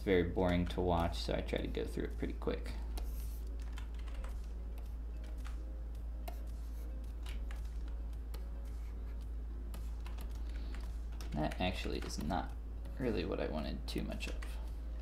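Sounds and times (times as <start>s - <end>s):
keyboard keys clicking: 3.6s - 5.6s, 9.7s - 12.6s.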